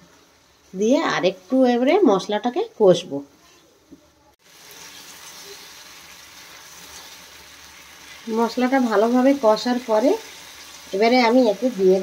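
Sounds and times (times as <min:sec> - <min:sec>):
masala sizzling in frying pan: 0:00.0 - 0:03.6, 0:04.3 - 0:12.0.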